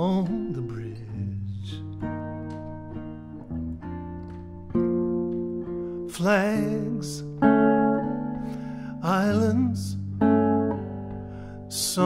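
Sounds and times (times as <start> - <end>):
man singing: 0.0 - 2.0, 6.0 - 7.6, 8.9 - 10.3, 11.7 - 12.0
jazz guitar chords ringing: 0.0 - 12.0.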